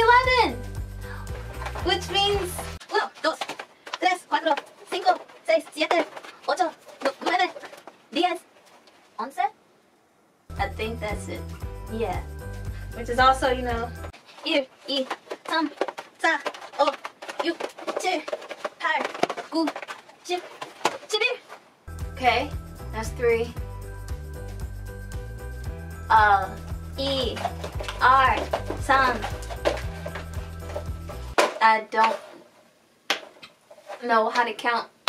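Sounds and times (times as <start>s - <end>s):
woman counting aloud: 0.0s - 0.6s, 1.8s - 8.4s, 26.1s - 29.3s
woman speaking: 0.0s - 0.6s, 1.7s - 8.5s, 9.2s - 9.6s, 10.5s - 12.3s, 12.9s - 21.5s, 22.2s - 23.6s, 26.1s - 29.4s, 31.6s - 32.2s, 34.0s - 34.9s.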